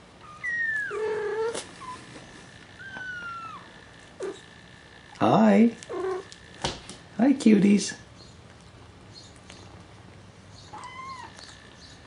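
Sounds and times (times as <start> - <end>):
cat meowing: 0.2 - 2.0, 2.8 - 4.4, 5.9 - 6.3, 10.7 - 11.6.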